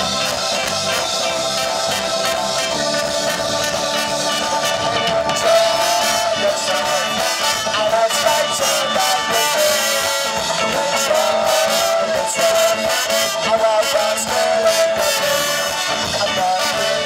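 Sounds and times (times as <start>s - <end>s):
live ska band playing: 0.0s - 17.0s.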